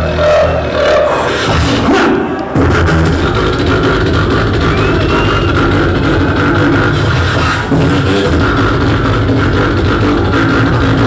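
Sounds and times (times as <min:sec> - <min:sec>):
beatboxing through sound system: 0:00.0 - 0:11.0.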